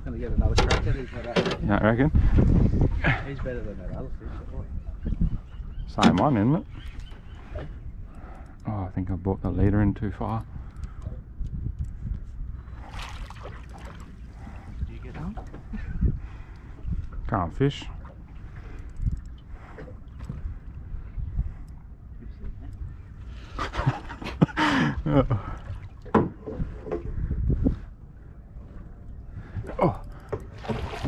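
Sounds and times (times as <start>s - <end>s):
steady low rumble: 7.3s - 31.0s
water sloshing and trickling: 12.6s - 27.6s, 28.2s - 31.0s
water splash: 12.8s - 14.1s, 30.6s - 31.0s
knocks and thumps in boat: 26.0s - 27.5s, 29.6s - 31.0s.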